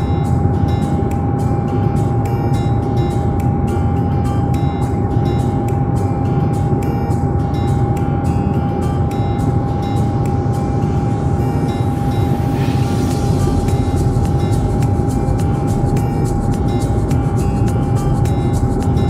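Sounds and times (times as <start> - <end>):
airliner engine drone in cabin: 0.0 - 19.0
background music with steady beat: 0.0 - 19.0.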